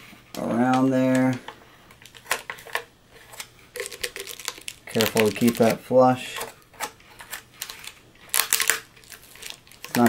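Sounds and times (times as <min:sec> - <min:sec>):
foil insulation and tape crinkling: 0:02.0 - 0:10.0.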